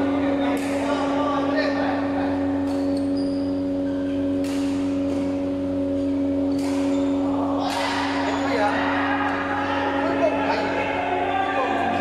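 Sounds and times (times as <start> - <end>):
steady hum: 0.0 - 12.0
racket hitting shuttlecock: 4.3 - 5.4, 6.4 - 7.0, 7.6 - 8.2.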